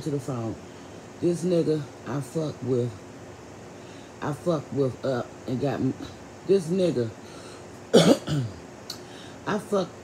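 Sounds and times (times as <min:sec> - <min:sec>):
person coughing: 0:07.9 - 0:08.6.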